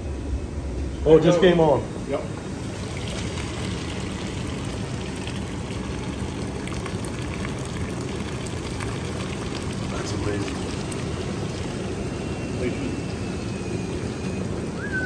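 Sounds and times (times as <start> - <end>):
syrup pouring into a filter: 2.6 - 14.8.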